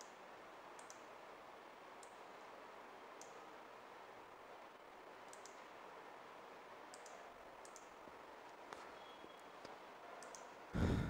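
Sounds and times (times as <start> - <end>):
computer mouse clicks: 0.0 - 1.1, 2.0 - 2.2, 3.1 - 3.4, 5.2 - 5.7, 6.8 - 8.0, 10.2 - 10.6.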